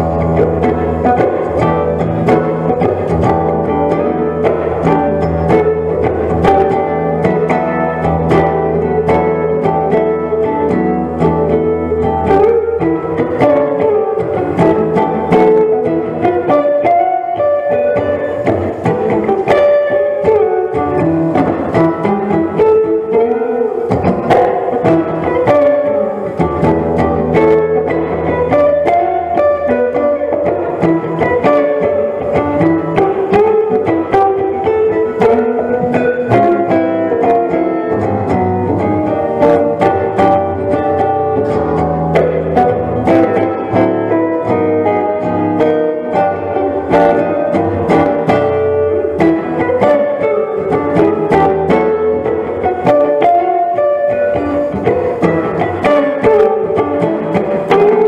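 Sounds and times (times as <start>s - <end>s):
bass accompaniment: 0.0s - 58.0s
jazz guitar playing: 0.0s - 58.0s.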